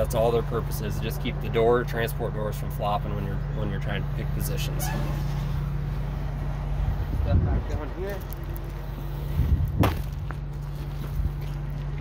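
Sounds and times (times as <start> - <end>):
engine idling hum: 0.0 - 12.0.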